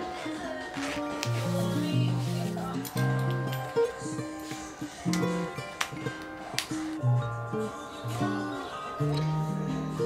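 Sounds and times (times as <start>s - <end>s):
lo-fi music with plucked guitar: 0.0s - 10.0s.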